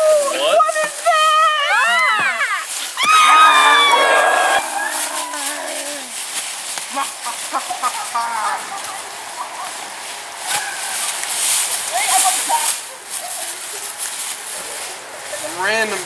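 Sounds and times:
feet running through dry leaves: 0.0 - 16.0
people screaming: 1.3 - 6.2.

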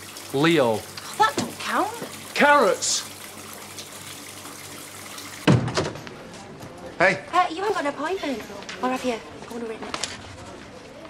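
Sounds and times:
loud thump: 5.5 - 6.0.

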